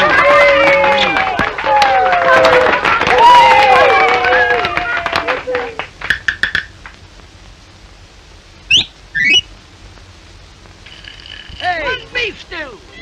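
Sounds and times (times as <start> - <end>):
cartoon taps: 6.1 - 6.7.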